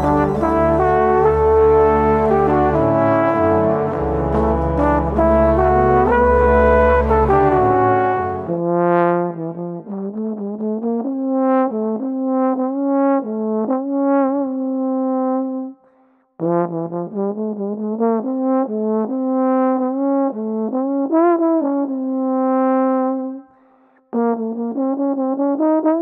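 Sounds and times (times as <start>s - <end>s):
music with bass and brass: 0.0s - 13.0s
solo slide trombone melody: 0.0s - 15.8s, 16.4s - 23.4s, 24.2s - 26.0s.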